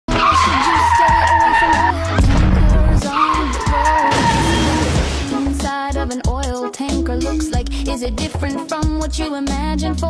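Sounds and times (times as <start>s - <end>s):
tyre screech high squeal: 0.1s - 2.1s, 3.0s - 4.9s
music with pulsing bass: 0.1s - 10.0s
deep rumble: 1.3s - 3.9s.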